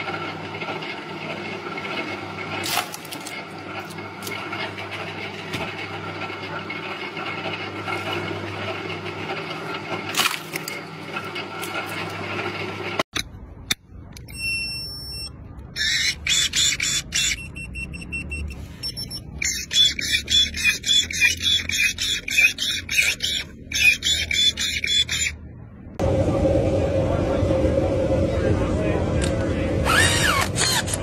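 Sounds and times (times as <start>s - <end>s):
log splitter motor humming: 0.0s - 13.0s
wood splitting crack: 2.6s - 3.3s, 10.1s - 10.8s
high beeps: 14.2s - 15.4s, 17.3s - 19.4s
high-pitched chirping calls: 15.8s - 17.6s, 18.9s - 25.4s.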